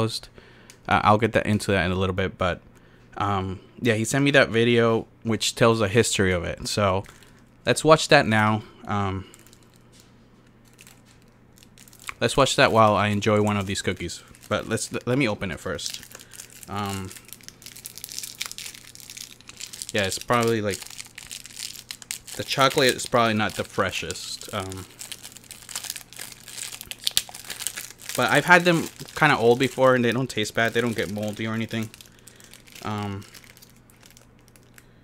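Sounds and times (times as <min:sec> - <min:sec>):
low steady hum: 0:00.0 - 0:35.0
wrapper crinkling: 0:07.0 - 0:07.5, 0:09.2 - 0:35.0.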